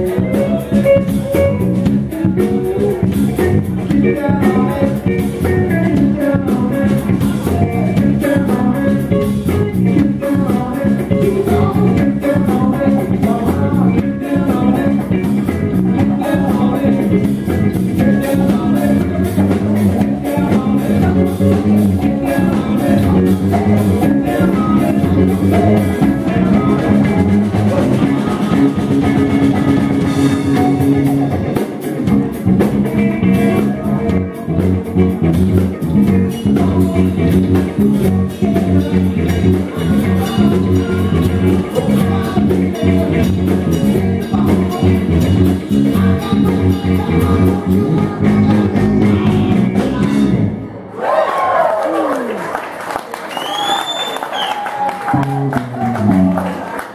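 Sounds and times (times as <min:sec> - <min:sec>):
man singing: 0:00.0 - 0:50.4
drum kit: 0:00.0 - 0:50.6
electric guitars: 0:00.0 - 0:51.0, 0:51.8 - 0:56.9
bass guitar: 0:00.0 - 0:52.0, 0:53.4 - 0:56.9.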